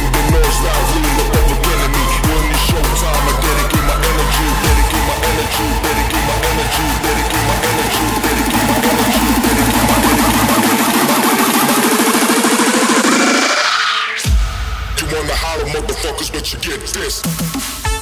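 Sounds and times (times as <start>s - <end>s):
heavy kick drum: 0.0s - 0.6s, 1.3s - 12.1s
hardstyle dance music: 0.0s - 18.0s.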